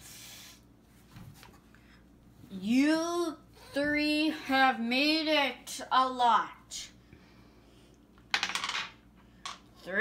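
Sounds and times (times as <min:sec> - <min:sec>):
plastic game pieces clattering: 0:08.3 - 0:08.9.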